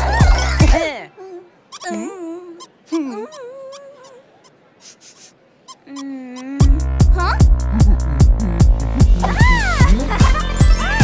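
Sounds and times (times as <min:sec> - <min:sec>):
cartoon character whimpering: 0:01.7 - 0:04.3, 0:08.6 - 0:10.0.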